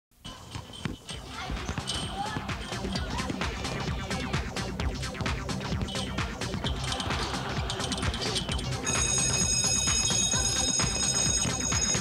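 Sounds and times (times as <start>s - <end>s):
balls bouncing on asphalt: 0.3s - 7.2s.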